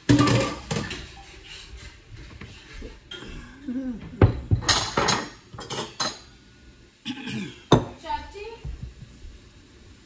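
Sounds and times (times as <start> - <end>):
metal utensils clinking on pot: 0.1 - 1.2, 4.6 - 6.2.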